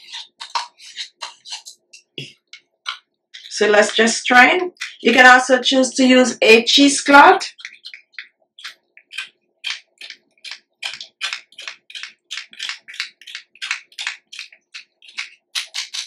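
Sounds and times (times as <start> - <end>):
spoon scraping puree through strainer: 7.4 - 16.0.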